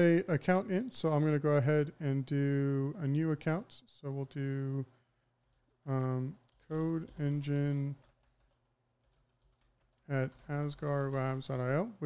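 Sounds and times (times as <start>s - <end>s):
faint keyboard typing: 4.2s - 12.0s.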